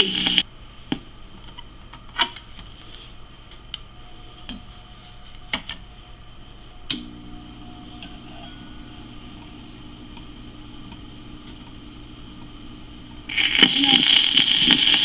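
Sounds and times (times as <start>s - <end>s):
muffled recorded voice: 0.0s - 0.4s, 13.3s - 15.0s
turntable motor hum: 0.0s - 0.4s, 3.5s - 15.0s
record surface hiss and crackle: 0.0s - 15.0s.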